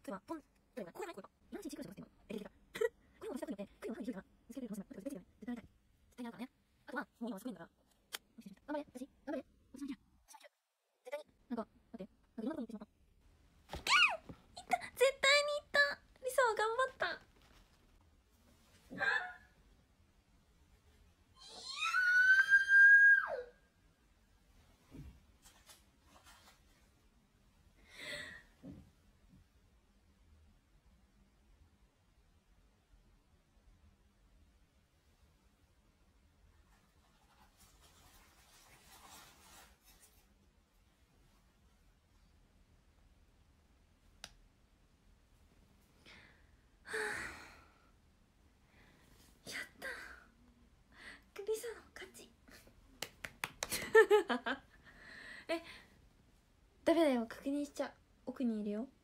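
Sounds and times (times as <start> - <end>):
woman screaming: 21.4 - 23.5
woman sighing: 46.1 - 47.9.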